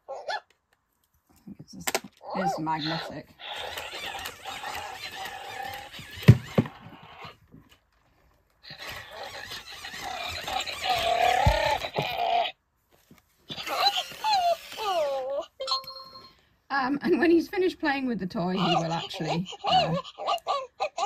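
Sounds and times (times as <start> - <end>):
robot dog sound effects: 2.2 - 7.4, 8.6 - 12.5, 13.5 - 15.8
robot walking noise: 3.0 - 7.3, 8.7 - 12.2.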